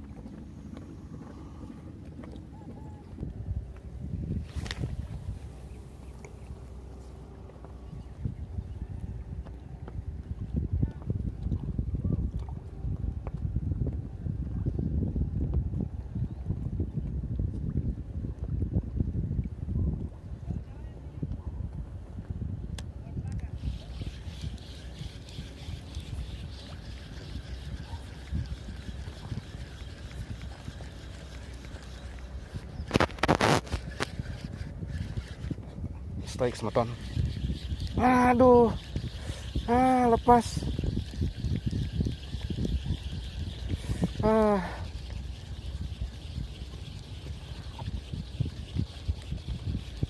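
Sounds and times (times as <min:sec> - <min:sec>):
water lapping at pier: 0:00.0 - 0:50.0
wind rumble on microphone: 0:00.0 - 0:50.0.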